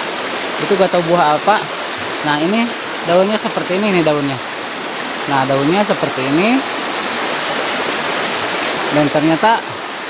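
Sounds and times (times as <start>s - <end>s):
river water rushing: 0.0s - 10.0s.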